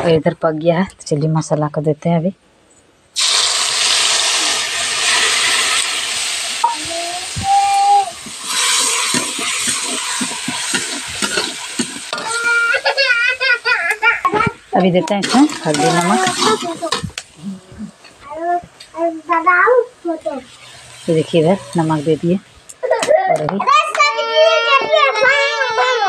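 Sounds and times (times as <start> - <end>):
spice paste sizzling in hot oil: 3.2 - 14.1, 15.1 - 17.5, 19.0 - 22.4
metal ladle scraping pan: 8.3 - 12.6, 14.8 - 17.2.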